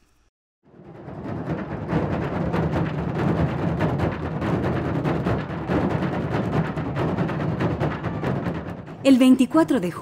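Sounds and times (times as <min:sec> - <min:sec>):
deep drum strikes: 0:00.7 - 0:09.3.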